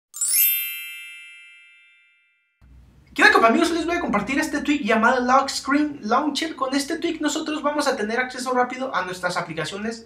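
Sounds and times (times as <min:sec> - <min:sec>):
bright electronic chime: 0:00.2 - 0:02.7.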